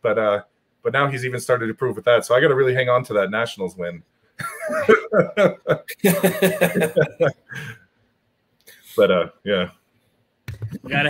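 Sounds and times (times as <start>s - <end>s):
man laughing in short bursts: 4.4s - 7.8s.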